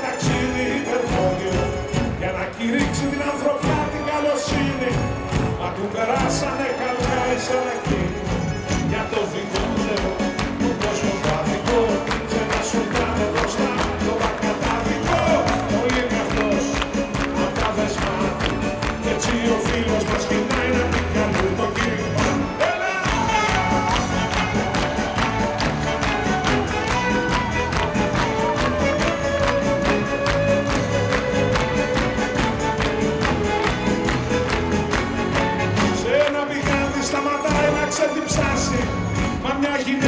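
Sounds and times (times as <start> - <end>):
live band playing instrumental: 0.0 - 40.0
quick percussion beat: 0.0 - 40.0.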